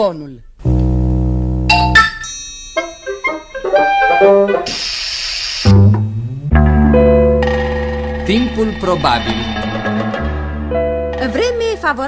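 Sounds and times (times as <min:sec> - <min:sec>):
short burst of hiss: 0:04.7 - 0:05.8.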